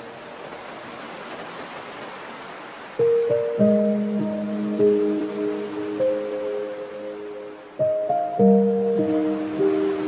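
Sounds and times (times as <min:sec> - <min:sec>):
piano phrases: 0:03.0 - 0:10.0.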